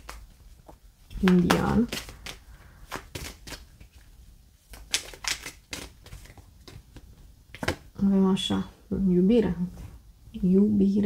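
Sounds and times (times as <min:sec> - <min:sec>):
cards being shuffled: 0:00.0 - 0:07.9.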